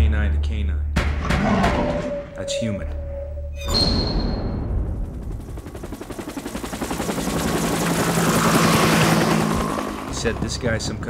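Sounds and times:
low steady drone: 1.0s - 3.8s.

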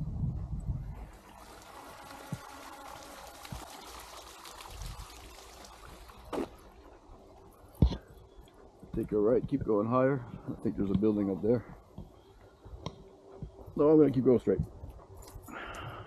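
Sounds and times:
water trickling: 1.0s - 7.8s
soft low thumps: 7.7s - 15.2s.

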